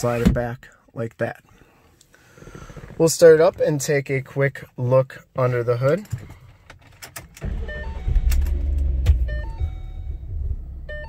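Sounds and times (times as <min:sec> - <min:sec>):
car engine starting and idling: 0:07.2 - 0:11.0.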